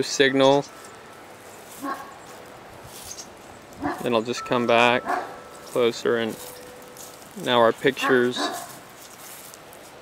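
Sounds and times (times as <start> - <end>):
outdoor background hiss: 0.0 - 10.0
distant dog bark: 1.8 - 2.2, 3.8 - 5.5, 8.0 - 8.8.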